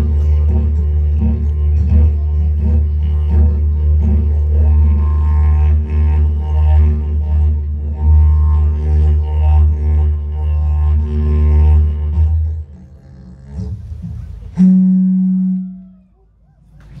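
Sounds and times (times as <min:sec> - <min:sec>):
didgeridoo drone: 0:00.0 - 0:17.0.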